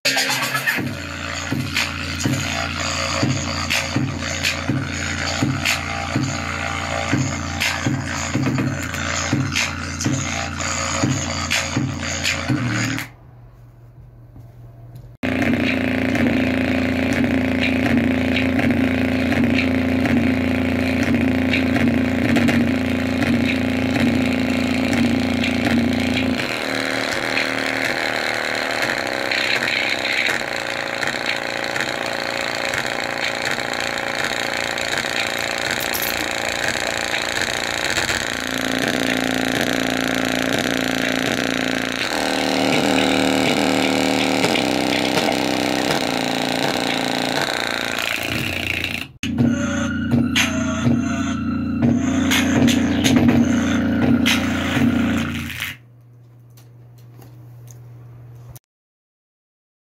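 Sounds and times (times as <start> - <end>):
overdriven speaker buzzing bass: 0.1 - 13.1, 15.2 - 55.8.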